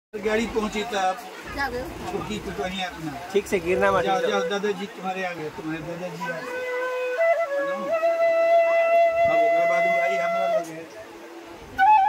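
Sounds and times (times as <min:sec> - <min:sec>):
bamboo flute playing slow melody: 0:04.0 - 0:04.8, 0:06.2 - 0:11.0, 0:11.6 - 0:12.0.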